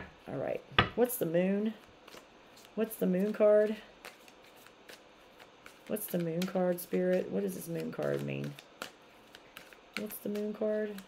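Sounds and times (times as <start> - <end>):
cards being shuffled: 1.6 - 11.0.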